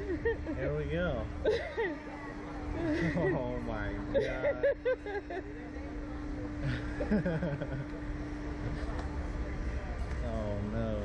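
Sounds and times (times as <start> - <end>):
ride machinery hum and rumble: 0.0 - 11.0.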